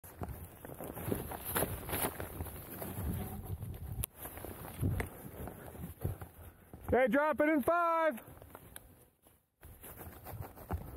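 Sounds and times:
skis crunching and scuffing snow: 0.0 - 10.9.

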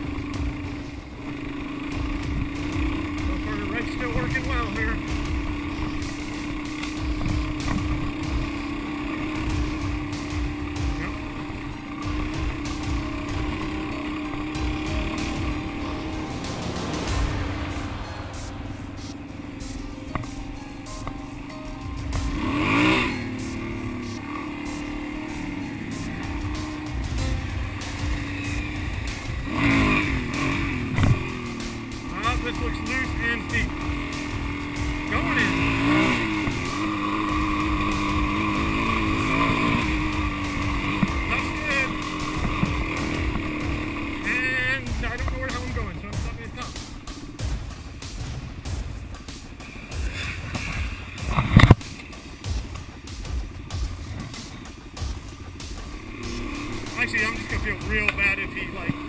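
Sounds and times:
motorcycle engine revving: 0.0 - 59.0.

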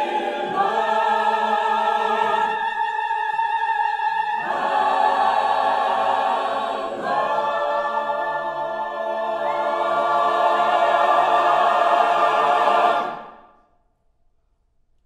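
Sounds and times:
choir singing sustained chords: 0.0 - 13.7.

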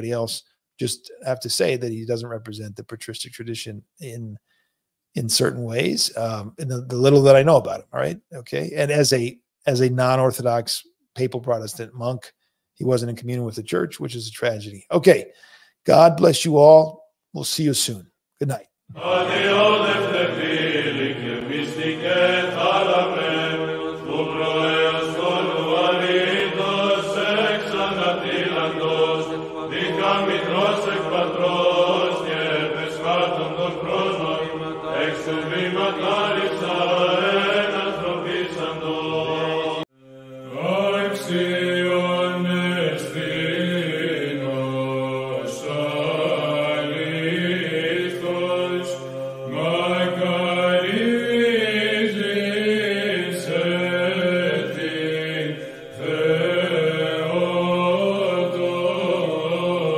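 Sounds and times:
voices chanting: 18.9 - 59.9.

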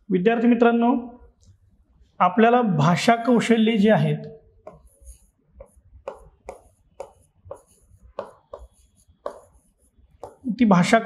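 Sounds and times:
marker pen writing on a board: 4.6 - 10.6.

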